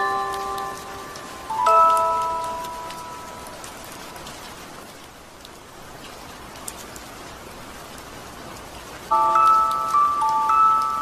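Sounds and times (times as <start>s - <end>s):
music box notes: 0.0s - 3.6s, 9.1s - 11.0s
steady rain: 0.0s - 11.0s.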